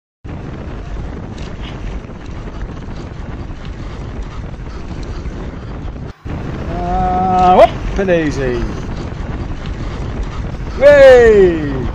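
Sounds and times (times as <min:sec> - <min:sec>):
wind rushing over microphone: 0:00.2 - 0:11.9.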